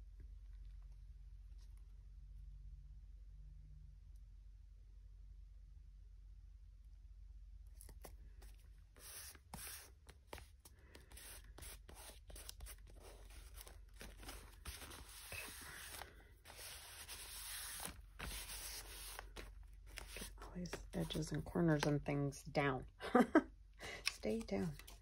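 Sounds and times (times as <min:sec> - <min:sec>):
paper rustling and scraping: 0:07.8 - 0:21.4
paper crinkles and taps: 0:24.0 - 0:25.0.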